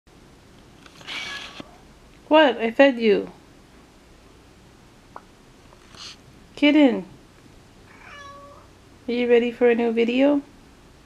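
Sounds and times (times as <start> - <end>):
cat meowing: 7.9 - 8.7.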